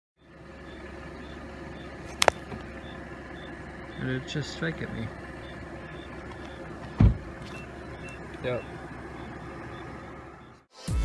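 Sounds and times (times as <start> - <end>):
idling vehicle hum: 0.2 - 10.7
sharp clicks: 2.1 - 2.7.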